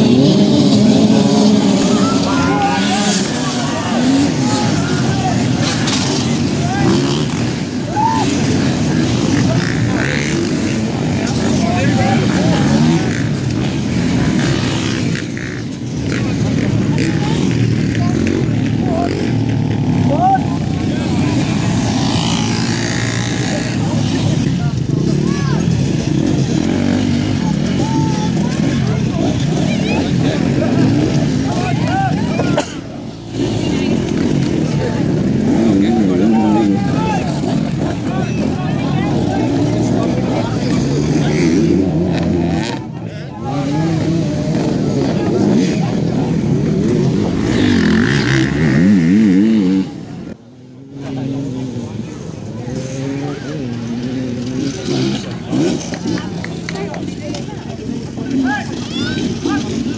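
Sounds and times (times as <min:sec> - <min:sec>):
dirt bike engines revving: 0:00.0 - 0:59.9
people's voices: 0:00.0 - 0:59.9.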